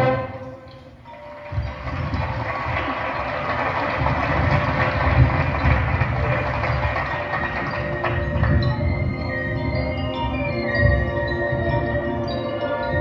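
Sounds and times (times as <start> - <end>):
marching band playing: 0.0 - 12.4.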